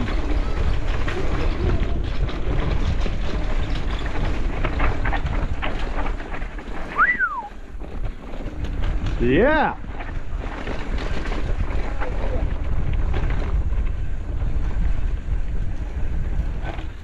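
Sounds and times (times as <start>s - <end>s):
bicycle knocks and rattles: 0.0s - 17.0s
wind buffeting microphone: 0.0s - 17.0s
short rising whistle: 7.0s - 7.6s.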